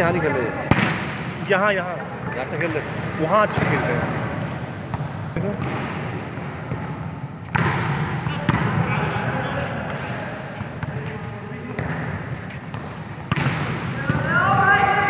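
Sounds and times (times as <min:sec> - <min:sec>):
volleyball smacks echoing: 0:00.5 - 0:01.6, 0:02.2 - 0:09.0, 0:11.7 - 0:15.0.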